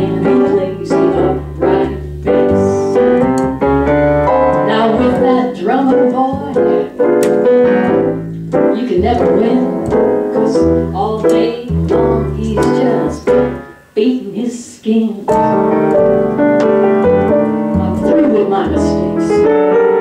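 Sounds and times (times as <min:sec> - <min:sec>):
woman singing: 0:00.0 - 0:03.0, 0:04.6 - 0:07.0, 0:08.7 - 0:15.6, 0:17.7 - 0:19.6
upright bass: 0:00.0 - 0:13.6, 0:15.3 - 0:20.0
piano: 0:00.0 - 0:20.0.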